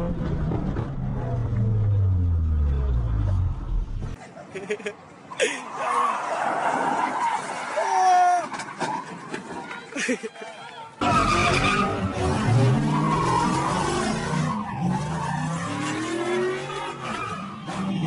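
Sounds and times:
car engine revving: 0:00.0 - 0:04.2, 0:11.0 - 0:18.0.

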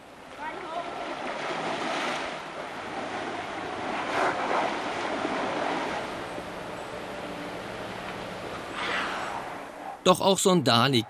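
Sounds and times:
water splashing and churning: 0:00.0 - 0:09.8.

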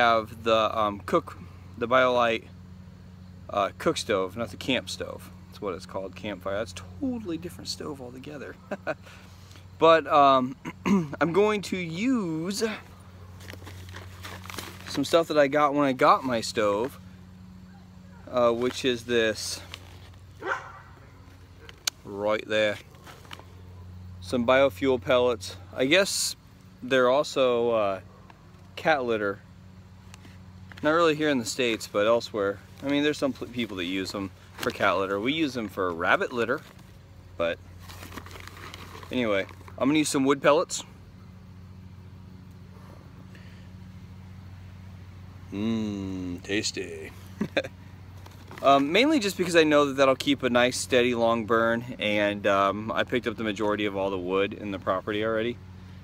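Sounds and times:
low background hum: 0:00.0 - 0:56.0
crinkling and rustling: 0:13.3 - 0:15.3, 0:19.5 - 0:22.0, 0:22.7 - 0:23.6, 0:32.6 - 0:37.0, 0:37.7 - 0:39.8, 0:48.1 - 0:49.6
wood pellets rustling: 0:13.4 - 0:15.3, 0:37.8 - 0:39.8.

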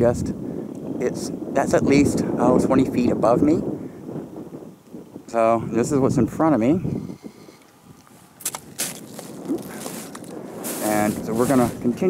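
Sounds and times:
footsteps crunching on rock: 0:08.0 - 0:12.0.

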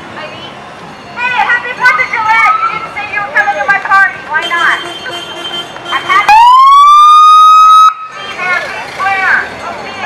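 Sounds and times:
police siren blast: 0:06.3 - 0:08.1.

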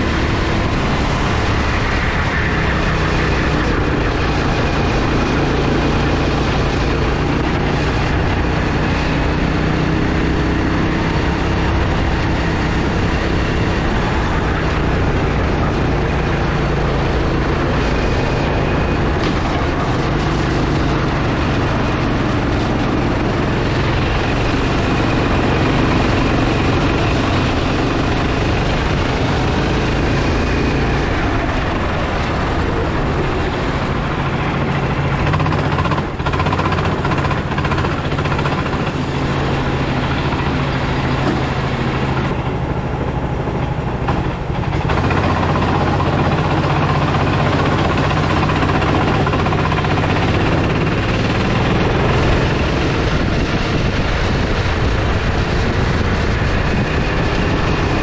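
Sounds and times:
kart engine running hard: 0:00.0 - 0:58.0
wind noise on microphone: 0:00.0 - 0:58.0.

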